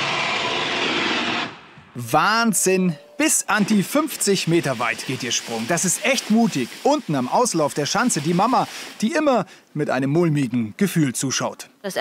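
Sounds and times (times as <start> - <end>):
skis rushing hiss on tracks: 3.7 - 9.0.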